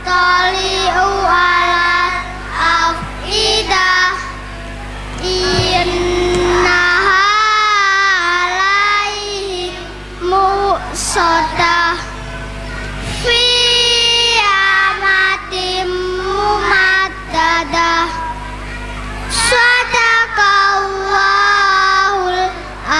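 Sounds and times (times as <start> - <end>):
steady low hum: 0.0 - 22.9
young children singing: 0.0 - 22.9.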